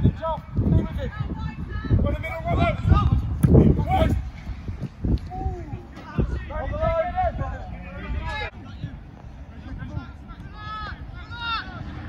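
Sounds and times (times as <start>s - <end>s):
wind rumble on microphone: 0.0s - 12.0s
distant shouts of footballers: 9.6s - 12.0s.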